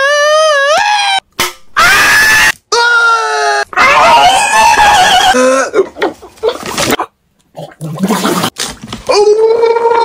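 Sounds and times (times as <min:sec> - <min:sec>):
man screaming: 0:01.8 - 0:05.8.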